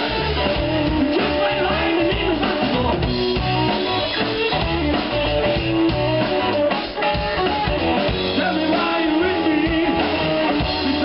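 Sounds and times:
bass guitar: 0:00.0 - 0:11.0
drum kit: 0:00.0 - 0:11.0
electric guitar: 0:00.0 - 0:11.0.

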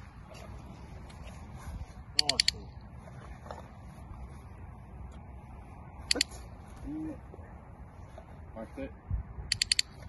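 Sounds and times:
training clicker clicks: 0:02.2 - 0:02.7, 0:06.1 - 0:06.4, 0:09.5 - 0:10.0.

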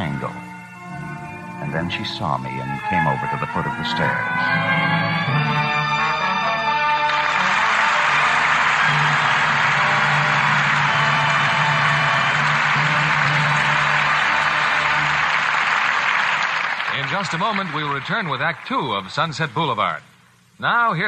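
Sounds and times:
sustained orchestral chord: 0:00.0 - 0:15.5
audience applauding: 0:05.9 - 0:19.5.

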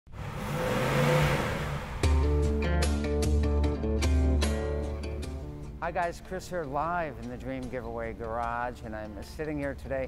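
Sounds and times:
car engine revving: 0:00.1 - 0:03.6.

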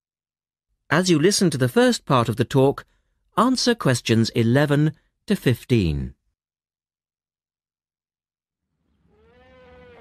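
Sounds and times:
drawn-out animal call: 0:09.0 - 0:10.0.

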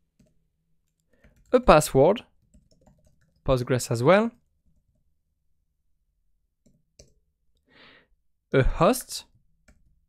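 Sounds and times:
soft intake of breath: 0:07.7 - 0:08.1.

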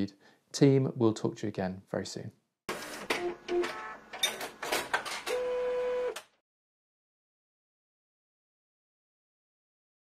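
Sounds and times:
printer clicks and motor whine: 0:02.7 - 0:04.0, 0:05.2 - 0:06.3.

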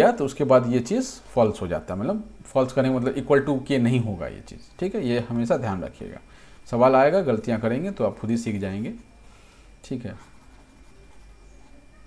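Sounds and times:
stylus scraping on tablet screen: 0:10.1 - 0:11.9.

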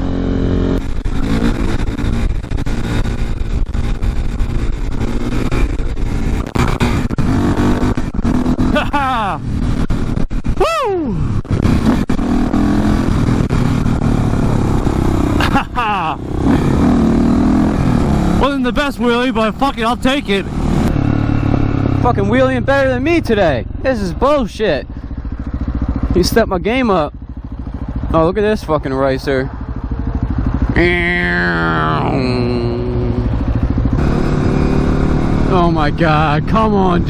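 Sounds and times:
motorcycle engine running: 0:00.0 - 0:37.0.

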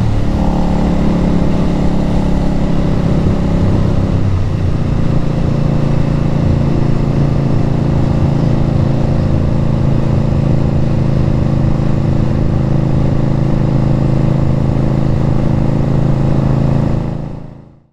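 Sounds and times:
motorcycle engine cruising: 0:00.0 - 0:17.7.

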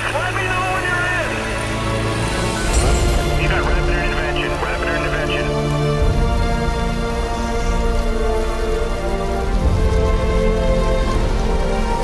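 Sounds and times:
crackle of blazing fire: 0:00.0 - 0:12.0
music of long held notes: 0:00.1 - 0:12.0.

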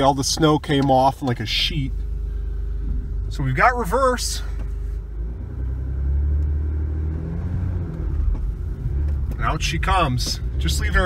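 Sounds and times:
truck engine low rumble: 0:00.0 - 0:11.0.

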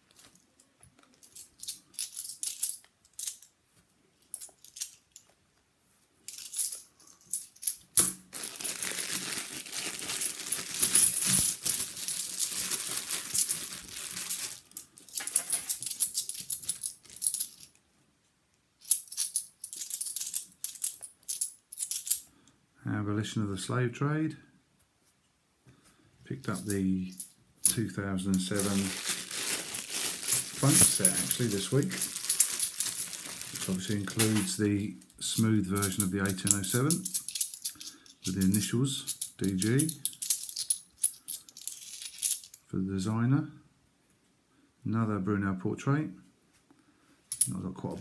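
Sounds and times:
coins clinking and jingling: 0:01.2 - 0:03.5, 0:06.3 - 0:17.7, 0:18.8 - 0:22.2, 0:26.5 - 0:34.5, 0:35.3 - 0:42.6
plastic bags crinkling: 0:08.2 - 0:17.6, 0:27.7 - 0:34.6.

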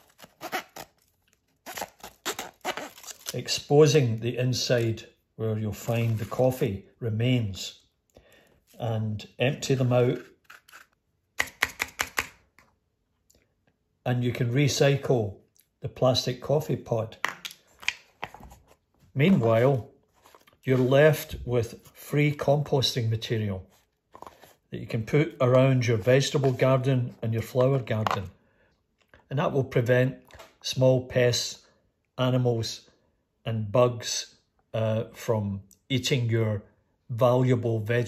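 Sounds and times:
knife cutting through foil lid: 0:00.0 - 0:01.0, 0:01.6 - 0:03.4, 0:10.4 - 0:11.0.

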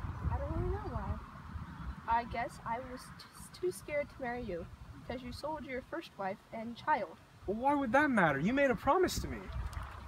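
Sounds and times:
wind rumbling on microphone: 0:00.0 - 0:05.6, 0:08.4 - 0:10.0.

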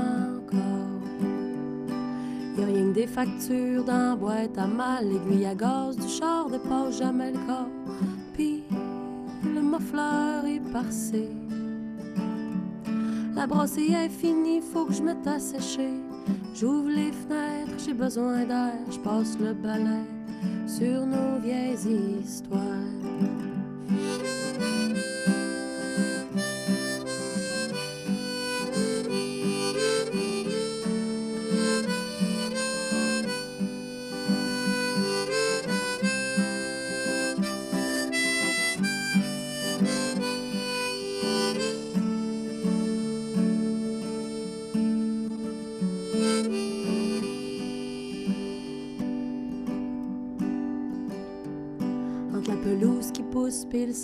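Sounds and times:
strummed acoustic guitar: 0:00.0 - 0:54.0
harmonica playing: 0:23.7 - 0:49.6.

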